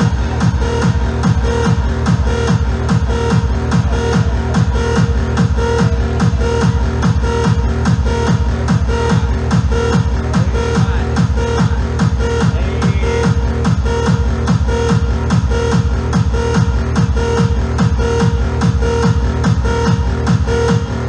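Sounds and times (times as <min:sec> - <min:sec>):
pulsing synth riff: 0:00.0 - 0:21.0.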